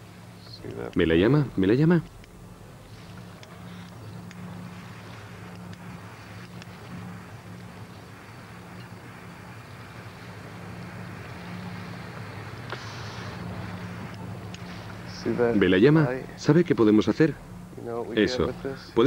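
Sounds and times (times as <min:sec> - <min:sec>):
low engine-like hum: 0:00.0 - 0:19.0
brief hiss: 0:02.6 - 0:15.5.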